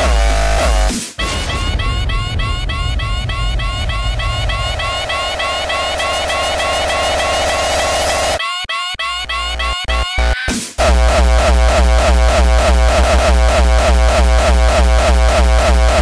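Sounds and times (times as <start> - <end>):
heavy distorted bass: 0.0 - 8.4, 9.9 - 16.0
held rising synth tone: 0.0 - 8.4
fast repeating synth figure: 0.0 - 8.5, 9.9 - 16.0.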